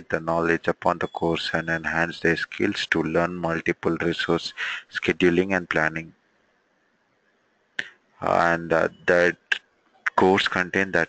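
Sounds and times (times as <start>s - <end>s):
man narrating: 0.0s - 6.1s, 8.2s - 11.0s.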